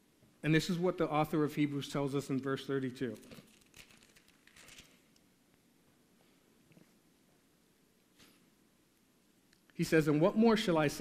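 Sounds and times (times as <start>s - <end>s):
thin pages rustling: 3.2s - 5.1s.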